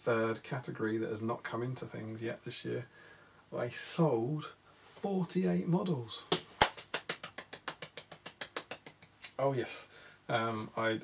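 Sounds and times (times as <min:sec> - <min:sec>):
small rapid hand claps: 0:06.3 - 0:09.4.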